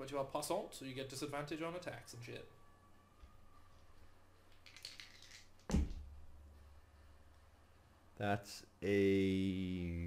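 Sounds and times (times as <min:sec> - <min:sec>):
loud thump on desk: 0:05.7 - 0:06.1.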